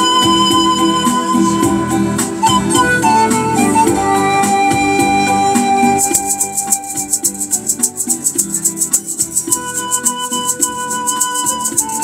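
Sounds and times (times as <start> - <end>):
panpipe long note: 0.0 - 7.8, 9.5 - 12.0
maraca shaking: 0.0 - 12.0
plucked strings: 0.0 - 12.0.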